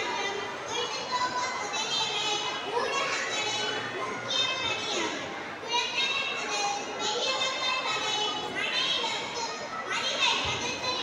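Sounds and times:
girl speaking into a microphone: 0:00.0 - 0:11.0.

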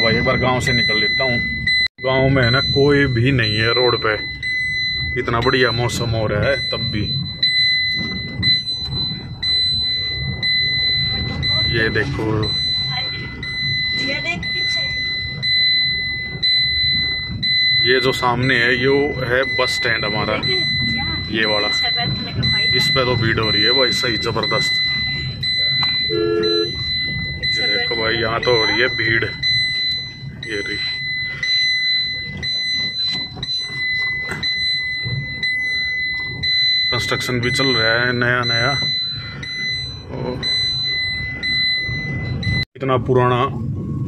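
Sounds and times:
car warning buzzer: 0:00.0 - 0:42.7.

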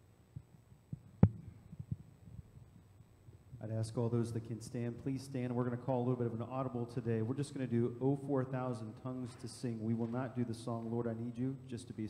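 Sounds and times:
microphone thump: 0:01.2 - 0:02.0.

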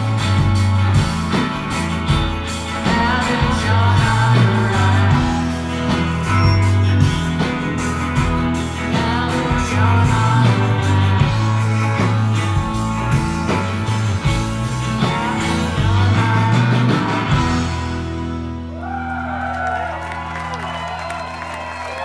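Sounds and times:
bass line: 0:00.0 - 0:22.0
drums: 0:00.0 - 0:22.0
guitars: 0:00.0 - 0:22.0
person singing: 0:02.5 - 0:07.5, 0:08.6 - 0:13.6, 0:14.4 - 0:18.0.

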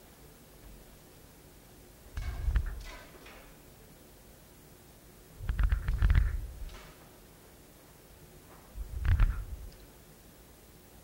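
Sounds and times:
handling noise near microphone: 0:02.2 - 0:03.5, 0:08.4 - 0:09.7
crackles and clicks: 0:05.5 - 0:06.8, 0:08.9 - 0:09.8.

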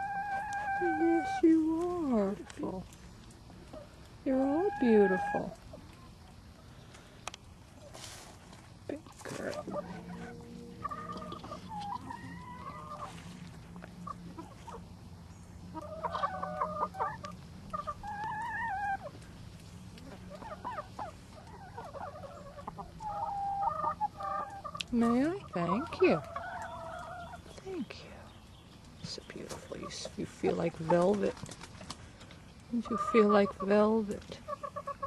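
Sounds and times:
hens clucking: 0:00.0 - 0:35.0
low steady hum: 0:00.0 - 0:35.0.

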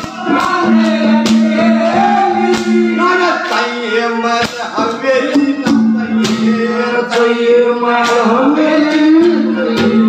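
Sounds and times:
sharp drum strokes: 0:00.0 - 0:03.8, 0:04.4 - 0:07.4
man singing into a microphone: 0:00.0 - 0:10.0.

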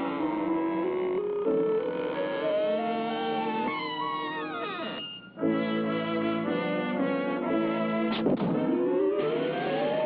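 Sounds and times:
orchestral cartoon music with brass: 0:00.0 - 0:10.0.

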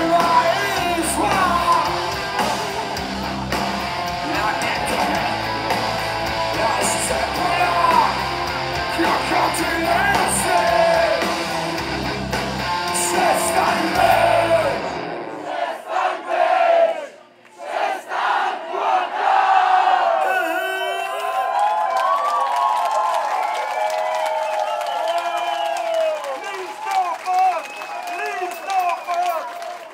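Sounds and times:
live rock band playing: 0:00.0 - 0:15.4
audience cheering and shouting: 0:00.0 - 0:17.1, 0:17.7 - 0:29.9.

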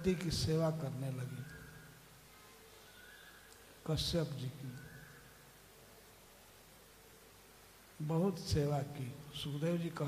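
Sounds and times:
man speaking: 0:00.0 - 0:01.5, 0:03.8 - 0:04.8, 0:08.0 - 0:10.0.

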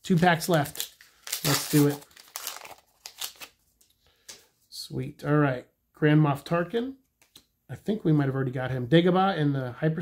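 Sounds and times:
foil wrapper crinkling: 0:00.1 - 0:03.6.

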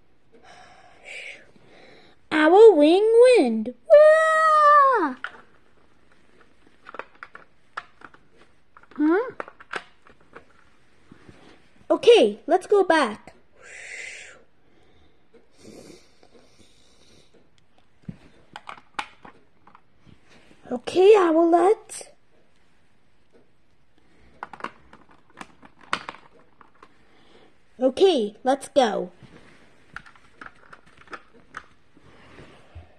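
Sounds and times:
plastic toys clicking on carpet: 0:05.2 - 0:05.6, 0:06.3 - 0:10.7, 0:17.8 - 0:19.9, 0:24.3 - 0:27.0, 0:29.9 - 0:31.8.

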